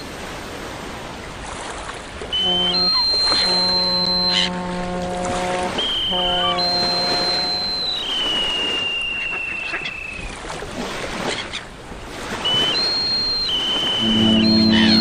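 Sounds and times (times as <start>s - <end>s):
ship's horn blasts: 2.2s - 9.1s, 12.2s - 15.0s
high shrill whistle: 2.4s - 4.5s, 5.7s - 10.2s, 12.5s - 15.0s.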